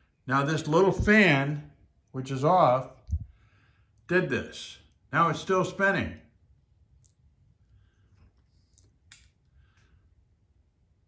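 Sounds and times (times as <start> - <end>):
faint low room rumble: 0.0 - 11.0.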